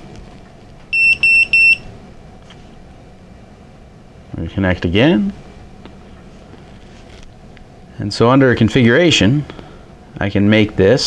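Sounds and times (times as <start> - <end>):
short electronic beeps: 0.9 - 1.9.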